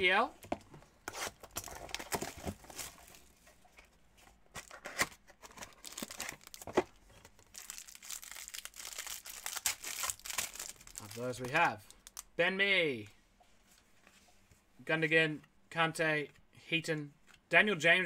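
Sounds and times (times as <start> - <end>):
card pack wrapper crinkling and tearing: 4.6 - 12.3.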